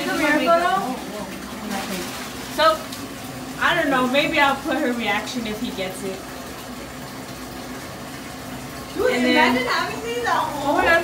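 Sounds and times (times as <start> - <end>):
water running from a tap: 0.0 - 11.0.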